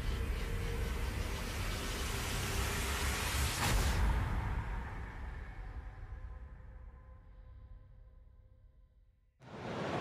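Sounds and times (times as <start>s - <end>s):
rushing noise: 9.4s - 10.0s.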